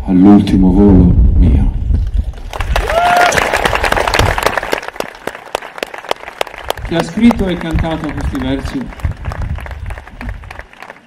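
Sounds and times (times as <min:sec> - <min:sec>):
audience applauding: 0:02.4 - 0:11.0.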